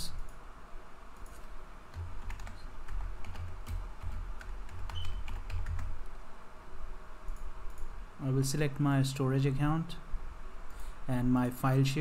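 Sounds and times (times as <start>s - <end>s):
computer keyboard typing: 1.2s - 6.1s.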